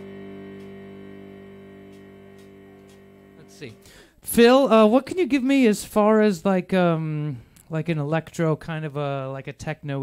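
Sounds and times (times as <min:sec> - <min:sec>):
chord ringing on an instrument: 0:00.0 - 0:04.0.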